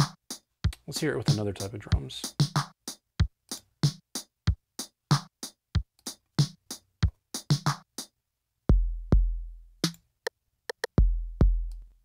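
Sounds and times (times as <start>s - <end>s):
deep kick drum booms: 8.7s - 9.5s, 11.0s - 11.7s.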